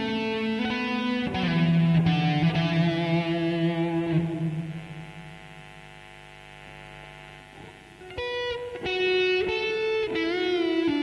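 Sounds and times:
electric guitar ballad melody: 0.0s - 5.6s, 7.5s - 11.0s.

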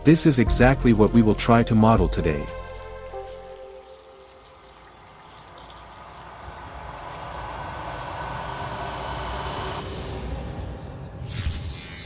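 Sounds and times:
low rumble: 6.5s - 11.2s
airy noisy riser: 6.6s - 12.0s.

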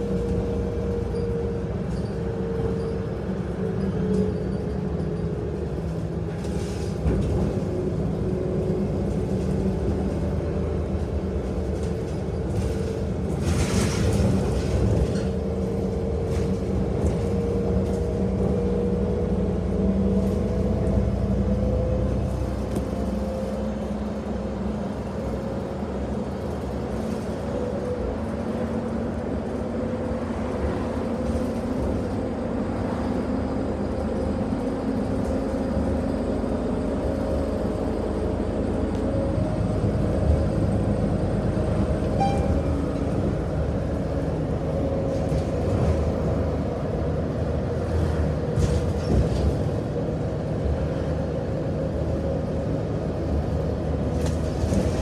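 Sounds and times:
bus engine running: 0.0s - 55.0s
road and tyre rumble: 0.0s - 55.0s.

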